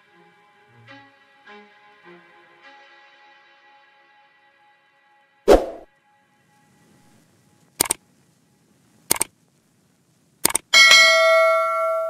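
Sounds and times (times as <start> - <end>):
quick double click: 10.4 - 10.6
bright bell ding: 10.8 - 12.0.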